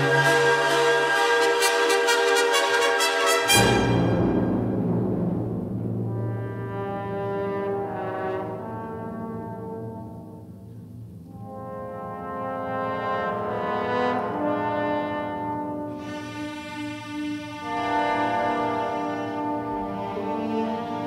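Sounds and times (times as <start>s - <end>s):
orchestra playing brass chords: 0.0s - 10.4s, 11.3s - 21.0s.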